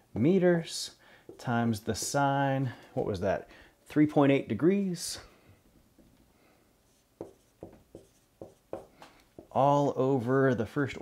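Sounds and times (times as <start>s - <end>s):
marker writing on whiteboard: 1.3s - 2.3s, 6.9s - 9.6s.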